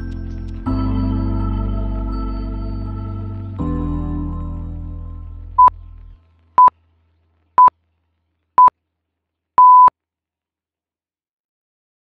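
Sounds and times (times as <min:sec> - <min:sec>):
background music: 0:00.0 - 0:06.7
short high timer beeps: 0:09.6 - 0:09.9.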